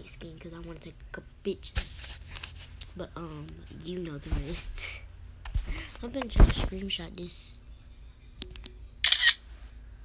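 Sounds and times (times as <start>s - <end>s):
phone camera shutter: 9.0s - 9.4s.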